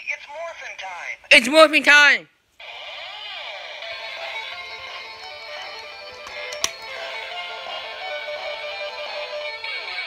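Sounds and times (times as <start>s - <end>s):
toy electronic guitar riff music: 2.6s - 10.0s
plastic toy button click: 6.2s - 6.8s.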